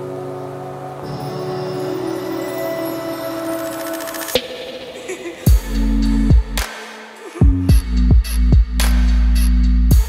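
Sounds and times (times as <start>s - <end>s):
background music sustained chords: 0.0s - 10.0s.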